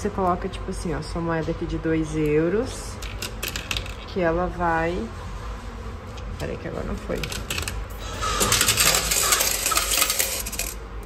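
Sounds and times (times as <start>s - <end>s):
coins clattering into metal tray: 7.2s - 10.8s
coin machine clicks: 7.2s - 10.9s.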